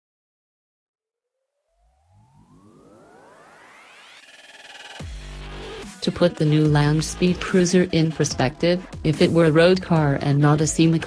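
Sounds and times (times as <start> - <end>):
rising synthesizer sweep: 1.4 - 6.0
electronic background music: 1.6 - 11.0.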